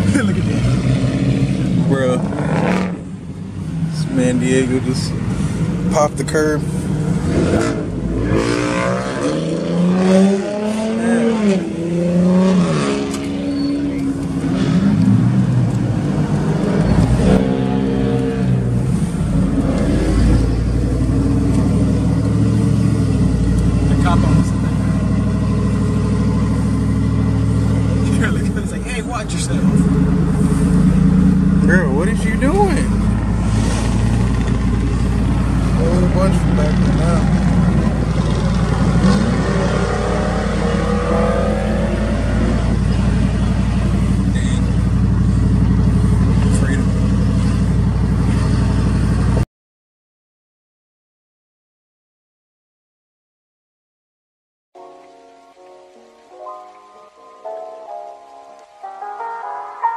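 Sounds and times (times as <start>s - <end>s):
car engine: 0.0s - 49.4s
road noise inside car: 0.0s - 49.4s.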